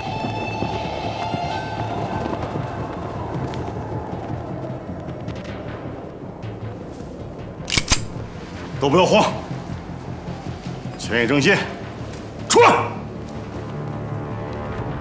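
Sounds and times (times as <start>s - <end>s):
tense dramatic film score: 0.0s - 15.0s.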